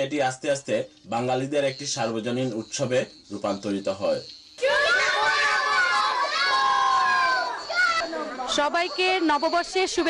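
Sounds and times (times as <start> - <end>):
children shouting in chorus: 4.6 - 8.3
women's voices: 8.5 - 10.0.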